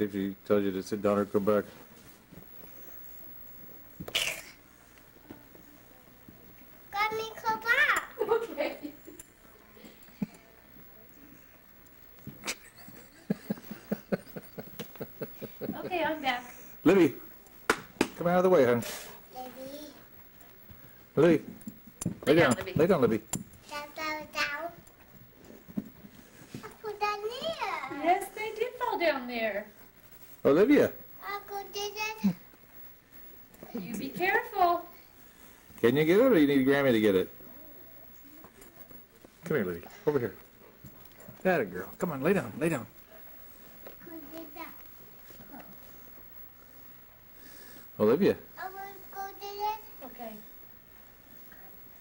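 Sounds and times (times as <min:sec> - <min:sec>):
person sneezing: 0:04.1 - 0:04.6
child's voice: 0:06.9 - 0:08.1, 0:19.3 - 0:20.0, 0:23.7 - 0:24.8, 0:26.6 - 0:28.0, 0:31.2 - 0:32.4, 0:44.0 - 0:44.8, 0:48.6 - 0:50.5.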